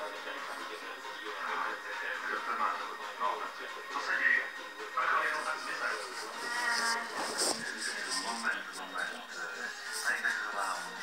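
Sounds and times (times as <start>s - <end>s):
muffled television speech and music: 0.0s - 11.0s.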